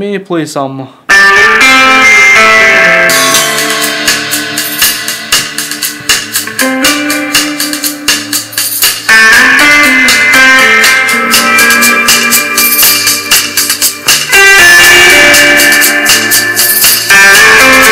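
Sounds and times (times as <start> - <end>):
guitar and drums music: 1.1 - 17.9.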